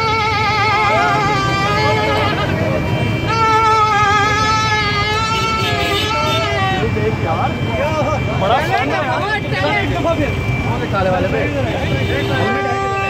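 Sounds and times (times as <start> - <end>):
plastic stadium horn: 0.0 - 6.9, 11.9 - 13.0
men shouting and talking: 0.0 - 13.0.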